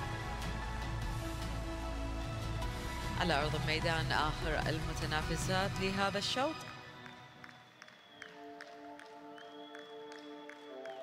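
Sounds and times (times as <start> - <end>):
quiet background music chords: 0.0 - 11.0.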